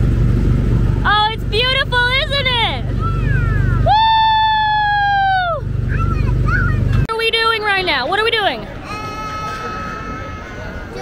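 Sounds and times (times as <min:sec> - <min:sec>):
steady low hum: 0:00.0 - 0:07.1.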